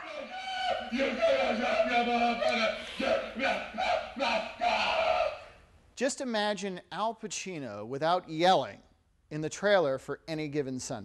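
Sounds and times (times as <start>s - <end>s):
man yelling: 0.0s - 5.6s.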